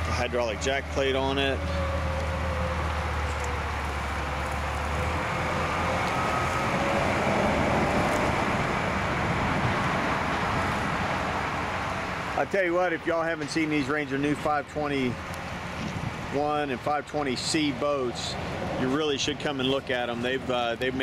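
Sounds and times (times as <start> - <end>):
low engine hum: 0.0 - 21.0
traffic rumble: 0.0 - 21.0.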